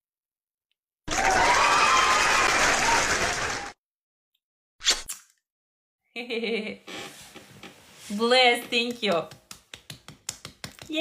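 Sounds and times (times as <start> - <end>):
woman laughing: 6.2 - 6.9.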